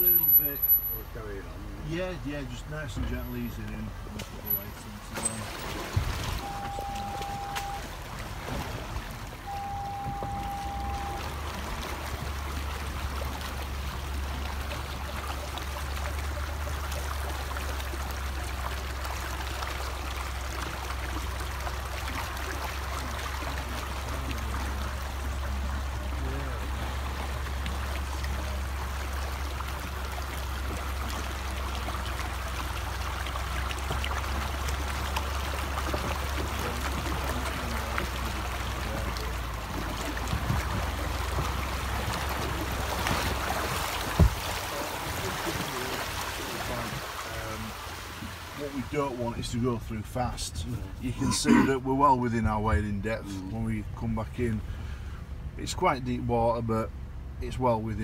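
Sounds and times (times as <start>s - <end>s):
water rushing and splashing: 0.0s - 58.0s
electronic beep: 6.4s - 7.9s, 9.5s - 11.3s.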